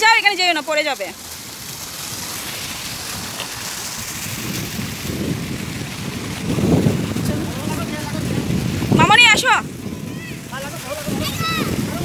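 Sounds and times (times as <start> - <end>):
fountain jet splashing: 0.0 - 12.0
wind buffeting microphone: 1.6 - 12.0.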